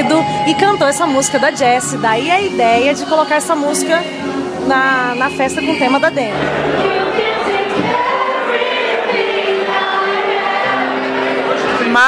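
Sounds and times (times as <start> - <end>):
woman singing into microphone: 0.0 - 8.5
backing music: 0.0 - 12.0.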